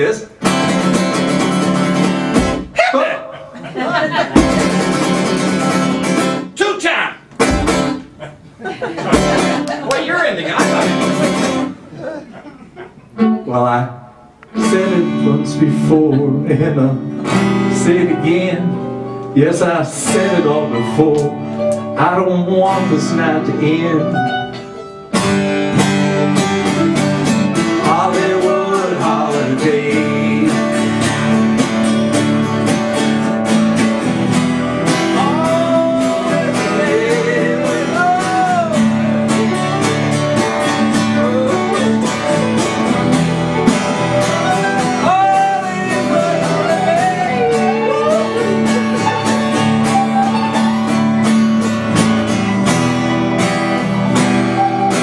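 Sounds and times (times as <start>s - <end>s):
strummed acoustic guitars: 0.0s - 6.7s, 7.3s - 55.0s
sliding lead melody: 14.5s - 55.0s.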